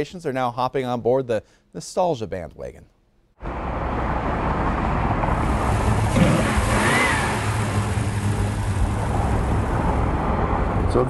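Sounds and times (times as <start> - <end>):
car engine rumble: 3.4 - 11.0
road noise: 3.4 - 11.0.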